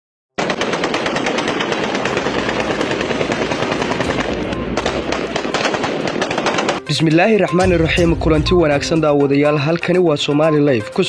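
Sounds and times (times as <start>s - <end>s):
automatic gunfire: 0.4s - 6.9s.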